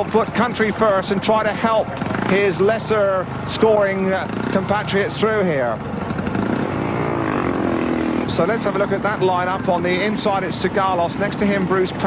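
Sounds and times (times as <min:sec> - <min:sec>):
motorcycle engines revving: 0:00.0 - 0:12.0.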